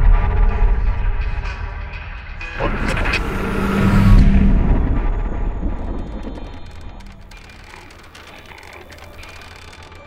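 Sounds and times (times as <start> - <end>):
steady low drone: 0.0 - 9.0
faint rapid clicks: 5.6 - 10.0.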